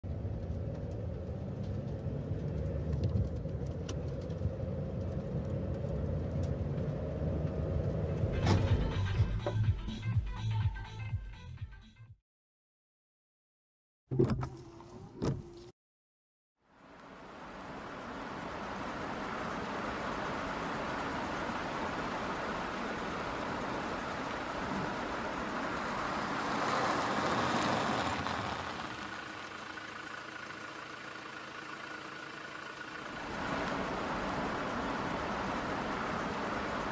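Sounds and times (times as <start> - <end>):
car road noise on wet road: 0.0 - 9.5, 16.7 - 36.9.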